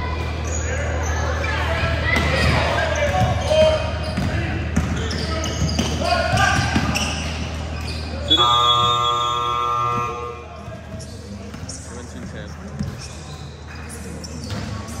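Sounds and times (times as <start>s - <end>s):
scoreboard buzzer blast: 8.3s - 10.4s.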